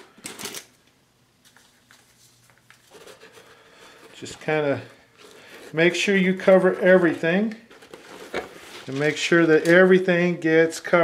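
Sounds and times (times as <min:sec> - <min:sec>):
plastic tub rustling: 0:02.0 - 0:10.0.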